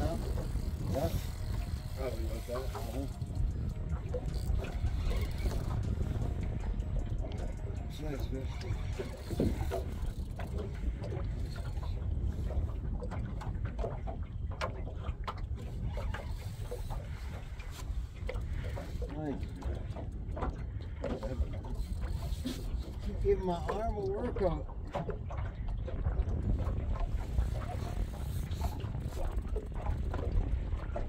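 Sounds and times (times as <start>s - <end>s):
wind rumbling on microphone: 0.0s - 31.0s.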